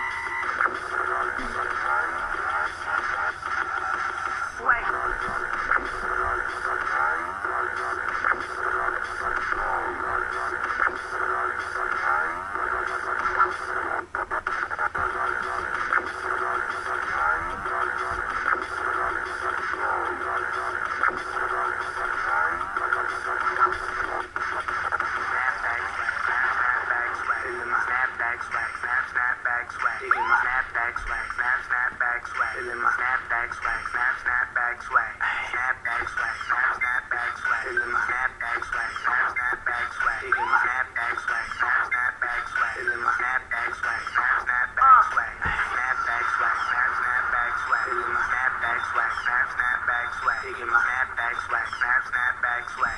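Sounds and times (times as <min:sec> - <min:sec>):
chopped filtered vocals: 0:00.0 - 0:52.9
electronic dance track: 0:00.0 - 0:52.9
chopped vocal sample: 0:01.1 - 0:03.5.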